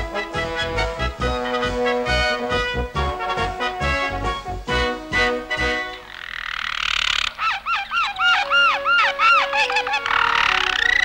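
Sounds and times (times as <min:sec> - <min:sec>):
soft background music: 0:00.0 - 0:06.1, 0:08.2 - 0:11.0
cartoon canary chirping: 0:06.0 - 0:11.0.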